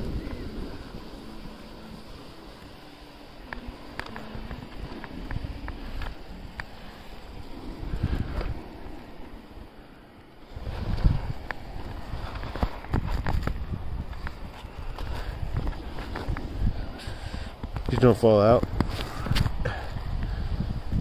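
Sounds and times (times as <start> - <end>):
skis scraping over snow: 0.0 - 21.0
wind rumbling on microphone: 0.0 - 21.0.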